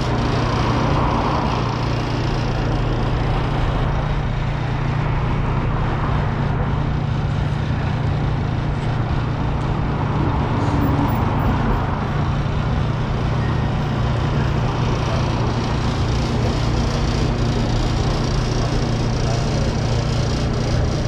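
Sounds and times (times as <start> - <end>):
constant low hum: 0.0 - 21.0
road traffic passing: 0.0 - 21.0.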